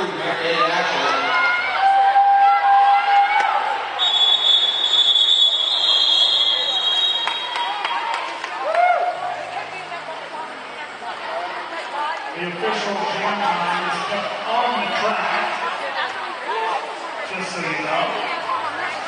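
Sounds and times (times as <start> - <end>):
crowd chatter: 0.0 - 19.0
referee's whistle blast: 4.0 - 7.6.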